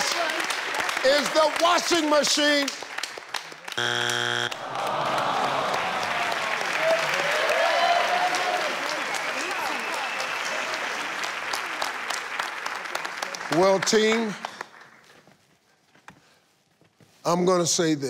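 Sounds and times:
studio applause with cheers: 0.0s - 14.7s
game show buzzer: 3.7s - 4.6s.

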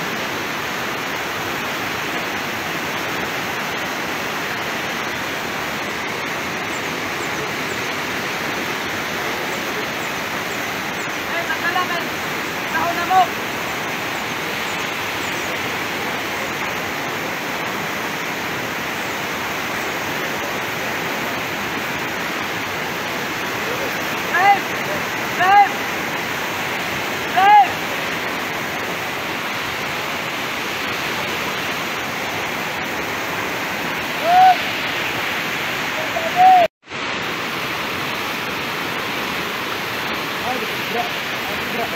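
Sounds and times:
river water rushing: 0.0s - 41.9s
people shouting: 27.3s - 27.8s, 34.1s - 34.7s.

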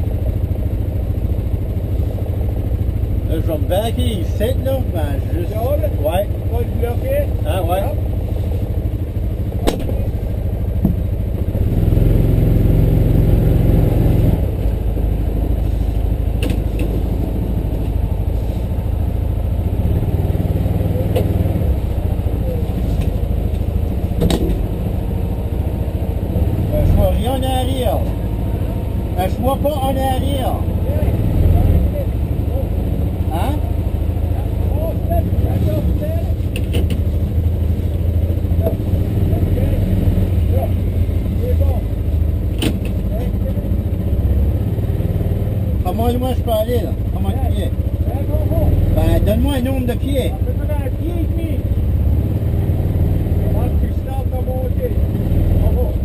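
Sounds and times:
vehicle engine droning: 0.0s - 56.0s
sharp clicks and knocks: 9.6s - 10.1s, 16.4s - 17.0s, 23.0s - 24.6s, 36.5s - 37.1s, 42.5s - 43.0s.

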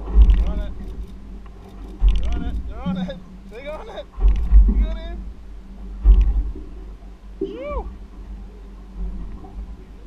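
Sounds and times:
wind buffeting microphone: 0.0s - 10.0s
person calling out: 7.5s - 7.9s.

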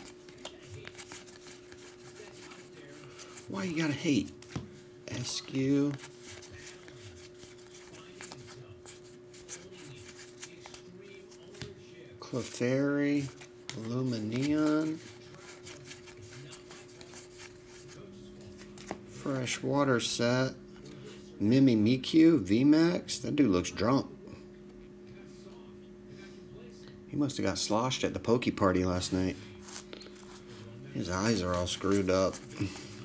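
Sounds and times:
trading cards flipped by hand: 0.0s - 3.4s
trading cards sliding and rustling: 0.0s - 19.0s, 29.5s - 33.0s.

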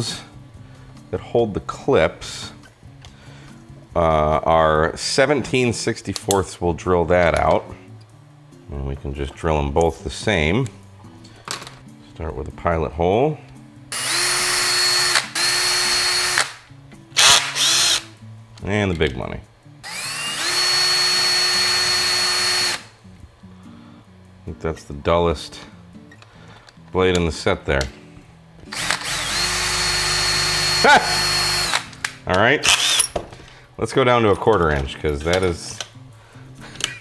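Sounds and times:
cordless drill motor whining: 13.9s - 16.5s, 17.2s - 18.1s, 19.8s - 22.9s, 28.7s - 31.9s, 32.6s - 33.1s.

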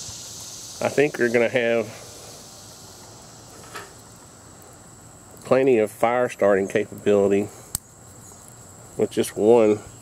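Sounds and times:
twig fire hissing: 0.0s - 10.0s
twig snapping in fire: 7.7s - 8.6s.

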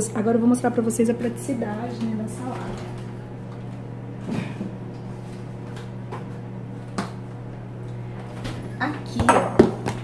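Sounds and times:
refrigerator hum: 0.0s - 10.0s.

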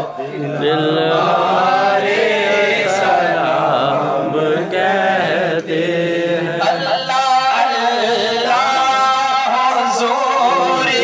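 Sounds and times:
men chanting together: 0.0s - 11.0s.

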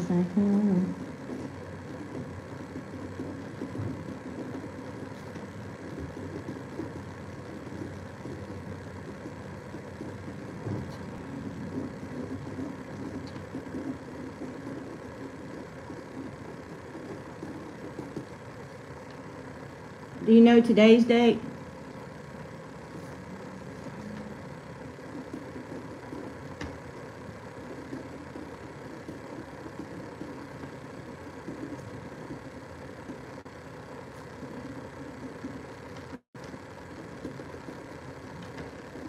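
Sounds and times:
low background hum: 0.0s - 39.0s.

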